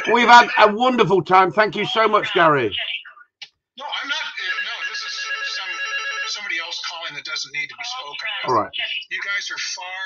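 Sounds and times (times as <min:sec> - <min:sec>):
man talking: 0:00.0 - 0:02.8, 0:08.4 - 0:08.7
phone ringtone: 0:04.0 - 0:07.1.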